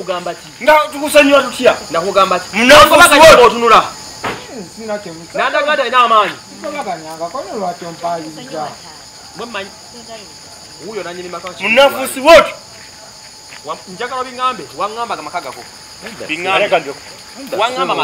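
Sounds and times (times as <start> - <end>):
people talking: 0.0 - 12.6, 13.6 - 18.0
crickets chirping: 0.0 - 18.0.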